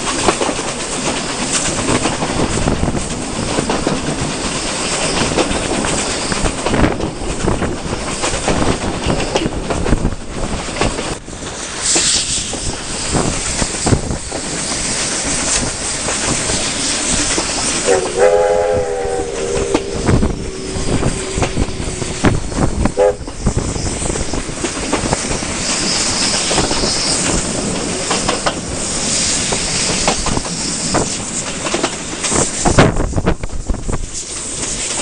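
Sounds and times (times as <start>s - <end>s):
wheels clicking over rail joints: 0.0s - 12.1s, 13.1s - 35.0s
train running noise: 0.0s - 35.0s
wind at window: 0.0s - 35.0s
steam locomotive whistle: 17.7s - 24.4s.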